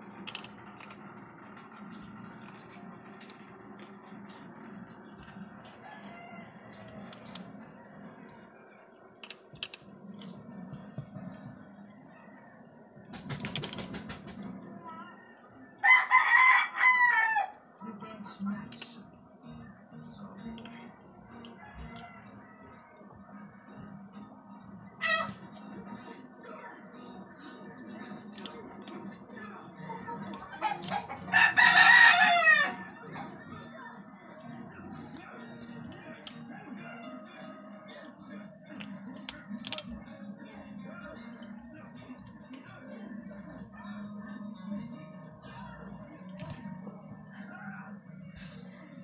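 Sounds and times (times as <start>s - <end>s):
rooster crowing: 5.8s - 7.0s, 15.8s - 17.6s, 30.7s - 33.0s
harsh animal call: 25.0s - 25.4s.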